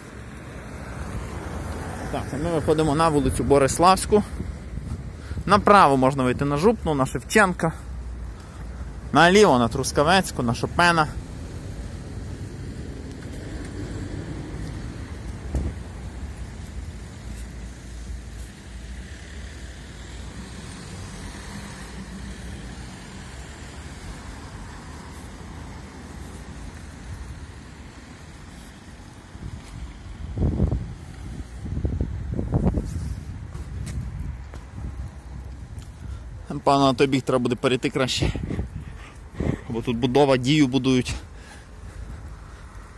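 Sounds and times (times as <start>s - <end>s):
cars passing with tyre hiss: 0.0s - 42.9s.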